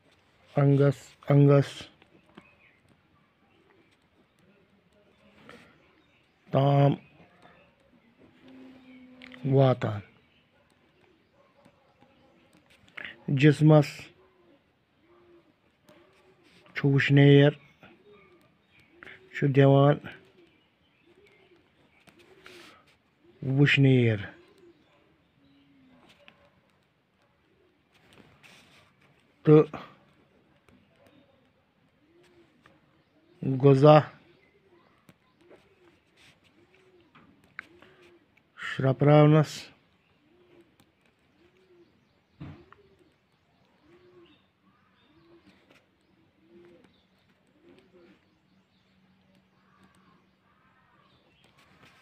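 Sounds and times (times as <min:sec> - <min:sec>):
man speaking: 0:00.4 - 0:02.1, 0:06.4 - 0:07.2, 0:09.3 - 0:10.2, 0:13.0 - 0:14.2, 0:16.5 - 0:17.8, 0:19.1 - 0:20.3, 0:23.4 - 0:24.5, 0:29.4 - 0:30.2, 0:33.4 - 0:34.3, 0:38.6 - 0:39.8
dove cooing: 0:07.0 - 0:52.0.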